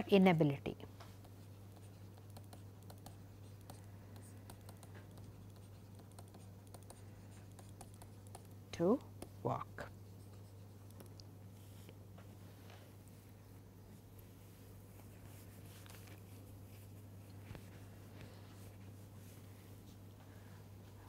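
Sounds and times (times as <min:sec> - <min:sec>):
low electrical hum: 0:00.0 - 0:21.0
stylus tapping on tablet screen: 0:01.2 - 0:09.4.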